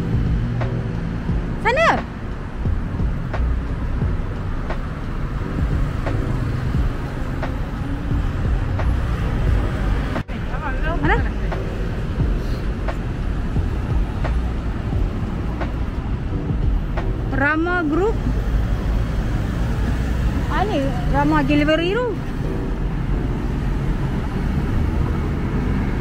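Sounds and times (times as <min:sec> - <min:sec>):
cars passing: 0:00.0 - 0:26.0
city street traffic rumble: 0:00.0 - 0:26.0.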